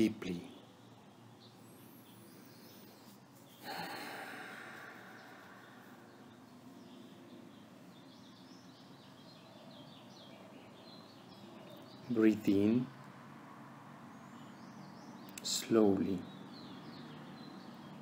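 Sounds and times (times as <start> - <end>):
low steady hiss: 0.0 - 18.0
faint bird chirps: 0.2 - 12.9
person breathing deeply: 1.6 - 6.4.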